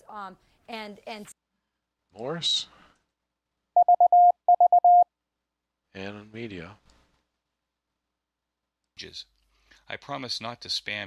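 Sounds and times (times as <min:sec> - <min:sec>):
morse code tone: 0:03.8 - 0:05.1.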